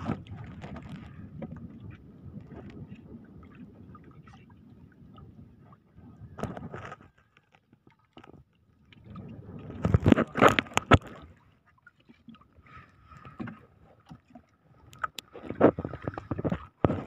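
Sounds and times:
scraping in wooden boat: 0:06.4 - 0:07.6, 0:09.0 - 0:11.3, 0:15.2 - 0:17.0.

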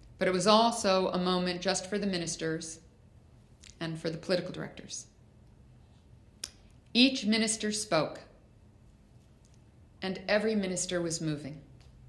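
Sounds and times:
woman speaking into a microphone: 0:03.7 - 0:05.1, 0:06.9 - 0:08.3, 0:10.0 - 0:11.7.

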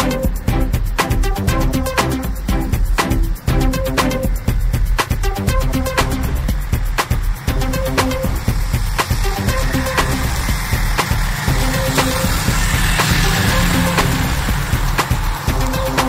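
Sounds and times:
electronic dance music: 0:00.0 - 0:16.0.

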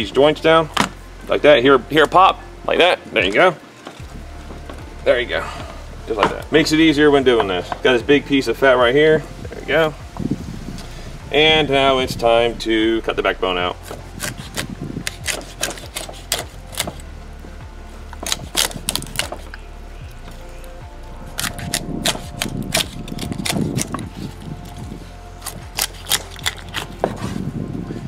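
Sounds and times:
faint background music: 0:00.0 - 0:28.0
knife cracking through bones: 0:13.9 - 0:17.0, 0:18.2 - 0:19.6, 0:21.3 - 0:24.8, 0:25.4 - 0:27.1.

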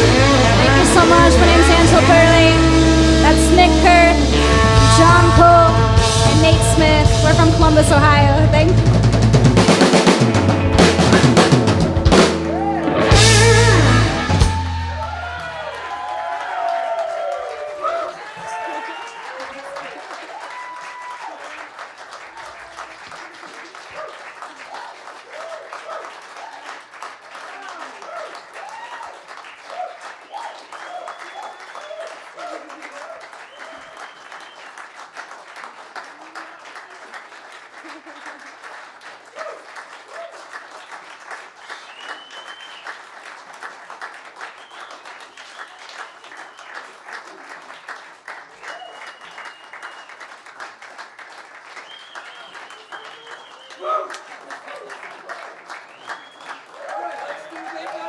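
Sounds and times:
cheering voices: 0:00.0 - 0:08.9, 0:10.4 - 0:26.8, 0:27.4 - 0:34.6, 0:51.9 - 0:58.0
audience applauding: 0:00.0 - 0:58.0
high brief whistles: 0:33.4 - 0:34.7, 0:41.6 - 0:43.0, 0:48.6 - 0:50.3, 0:51.8 - 0:53.9, 0:55.9 - 0:56.7.

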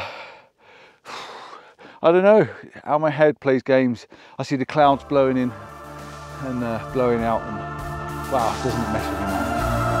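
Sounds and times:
man breathing heavily: 0:00.0 - 0:02.0, 0:04.1 - 0:04.4.

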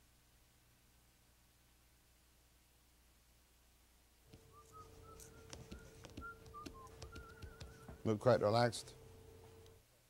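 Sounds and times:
steady low hum: 0:04.0 - 0:10.0
person whistling a tune: 0:04.4 - 0:08.1.

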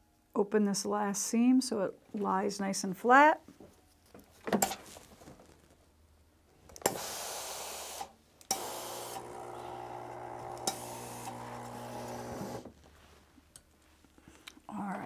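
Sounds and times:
steam hissing: 0:06.9 - 0:09.8.

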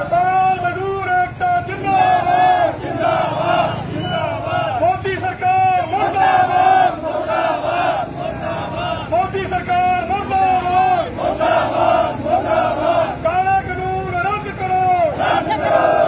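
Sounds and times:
crowd shouting slogans: 0:00.0 - 0:16.0.

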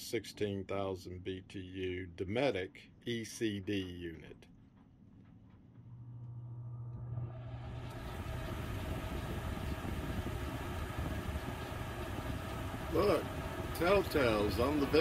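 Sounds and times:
air conditioner low hum: 0:00.0 - 0:15.0.

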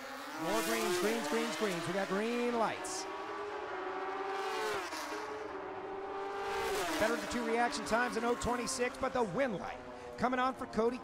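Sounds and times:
motorcycles at full throttle: 0:00.0 - 0:11.0.

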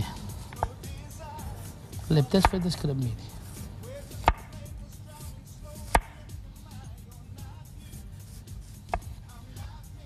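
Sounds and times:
knife striking cutting board: 0:02.2 - 0:03.0, 0:03.6 - 0:04.7, 0:05.8 - 0:06.3, 0:08.7 - 0:09.2.

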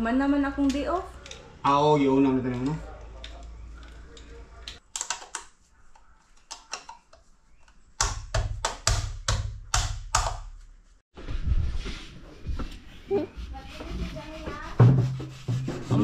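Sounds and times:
hand tool scraping a wall: 0:13.2 - 0:16.0.

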